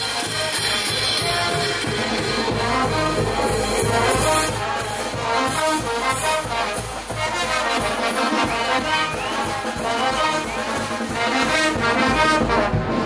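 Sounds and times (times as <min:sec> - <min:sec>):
brass band playing dance tune: 0:00.0 - 0:13.0.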